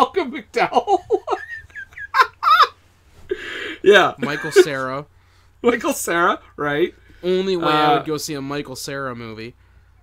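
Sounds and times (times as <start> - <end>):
people laughing: 0.7 - 2.8, 3.9 - 4.8.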